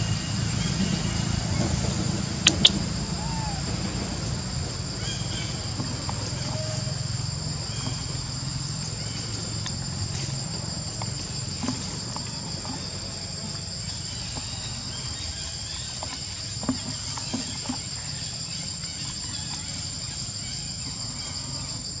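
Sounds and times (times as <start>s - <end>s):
shrill insect chorus: 0.0s - 22.0s.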